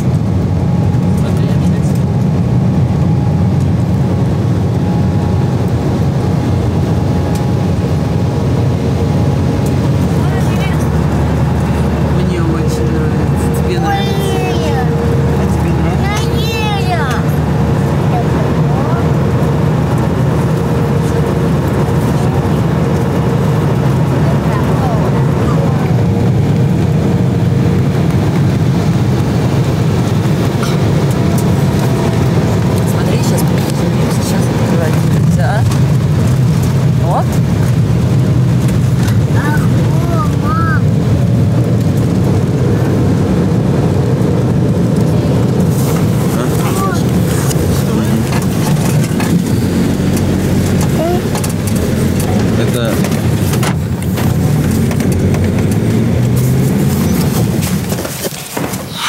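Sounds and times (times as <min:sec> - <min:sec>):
jet airliner cabin drone: 0:00.0 - 0:59.0.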